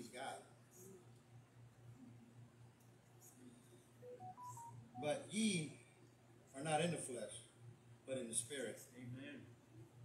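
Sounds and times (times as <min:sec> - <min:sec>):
low steady hum: 0:00.0 - 0:10.0
faint electronic beeps: 0:03.3 - 0:05.5.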